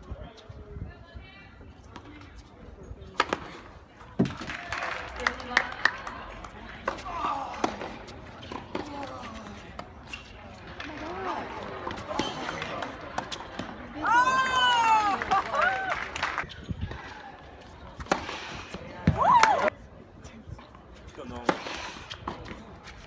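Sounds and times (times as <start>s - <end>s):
murmur of spectators: 0.0s - 23.0s
tennis balls bouncing and hit: 1.8s - 19.8s, 20.6s - 23.0s.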